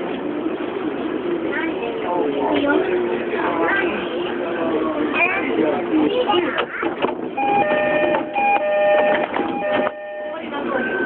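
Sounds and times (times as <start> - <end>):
two-note electronic door chime: 7.4 - 11.0.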